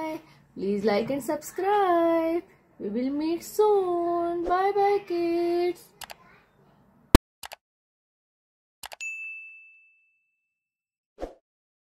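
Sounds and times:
notification bell ding: 0:08.9 - 0:10.4.

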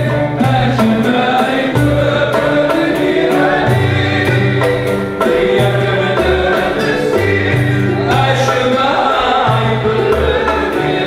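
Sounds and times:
instrumental accompaniment: 0:00.0 - 0:11.0
man singing into a microphone: 0:00.0 - 0:11.0.

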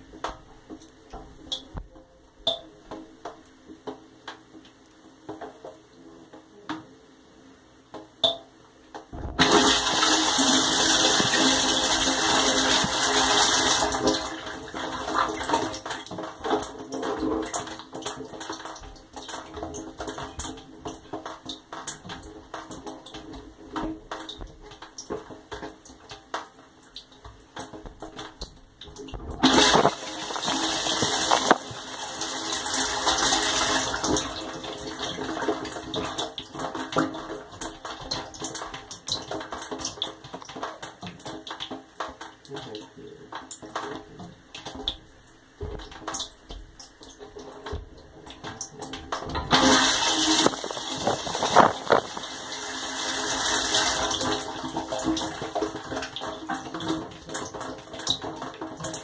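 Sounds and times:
water spraying inside dishwasher: 0:09.3 - 0:24.9, 0:29.2 - 0:41.0, 0:45.6 - 0:59.0.

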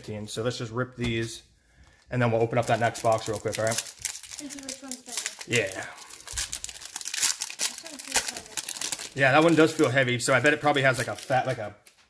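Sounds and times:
foil pack tearing and crinkling: 0:02.6 - 0:10.0.

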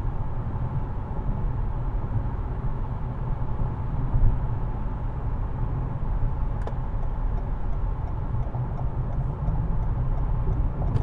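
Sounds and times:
car engine at highway speed: 0:00.0 - 0:11.0
tyre road noise: 0:05.1 - 0:11.0.

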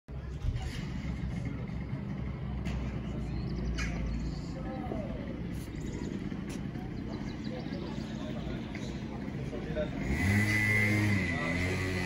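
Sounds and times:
low outdoor rumble: 0:00.1 - 0:12.0.

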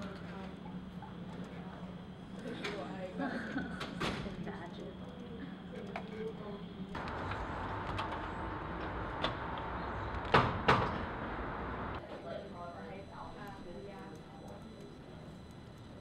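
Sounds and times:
background chatter: 0:00.0 - 0:07.0, 0:12.0 - 0:16.0
loud door clunks: 0:10.2 - 0:11.2.

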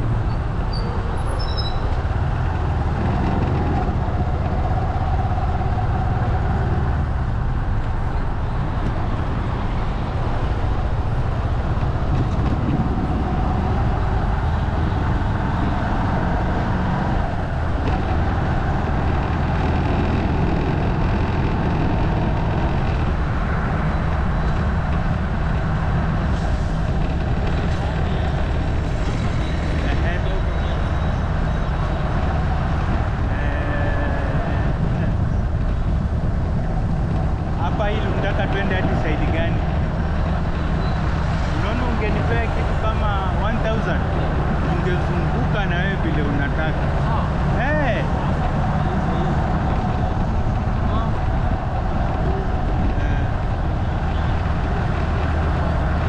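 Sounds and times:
road noise: 0:00.0 - 0:56.0
wind rumble: 0:00.0 - 0:56.0.

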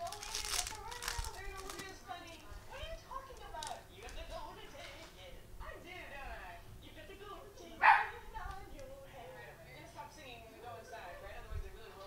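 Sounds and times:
dog barking: 0:07.8 - 0:08.2.

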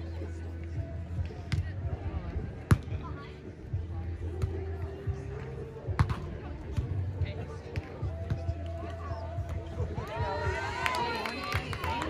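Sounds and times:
background music with bass: 0:00.0 - 0:12.0
faint voices: 0:00.0 - 0:12.0.

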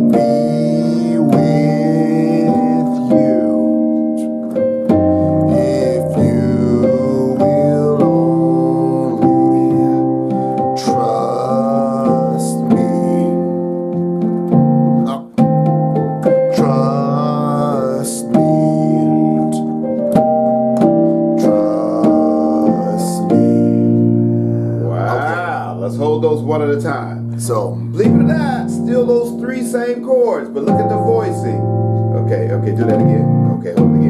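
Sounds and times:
piano playing gospel chords: 0:00.0 - 0:34.0.

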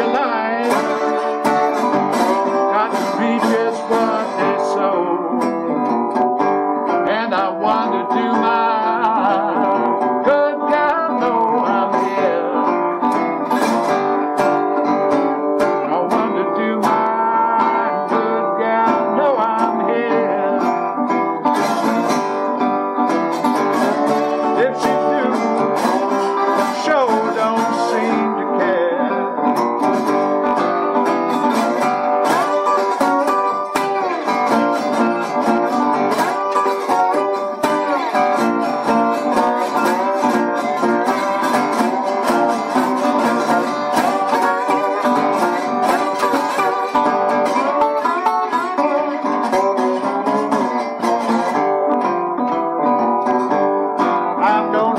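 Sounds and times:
fingerstyle blues on resonator guitar: 0:00.0 - 0:54.9.

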